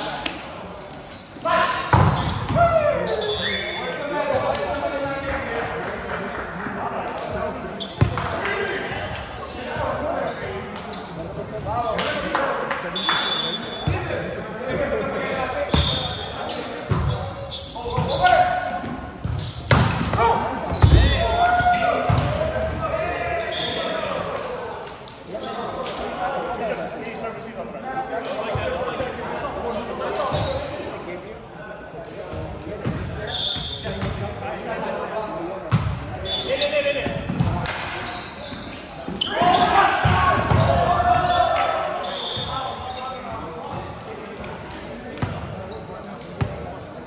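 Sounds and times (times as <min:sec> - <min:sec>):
players' voices echoing in gym: 0:00.0 - 0:47.0
volleyball thuds: 0:19.7 - 0:21.4.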